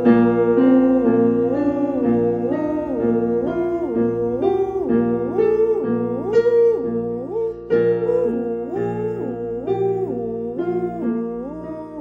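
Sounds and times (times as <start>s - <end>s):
person singing a vocalise: 0.0s - 12.0s
sustained accompaniment chords: 0.0s - 12.0s.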